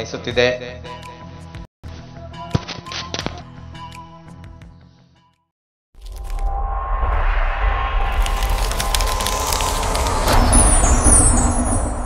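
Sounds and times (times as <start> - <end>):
whooshing swell: 6.0 - 12.0.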